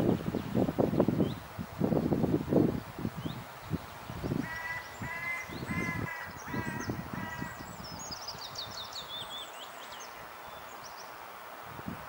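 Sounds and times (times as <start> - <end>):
bird calling: 4.3 - 7.8.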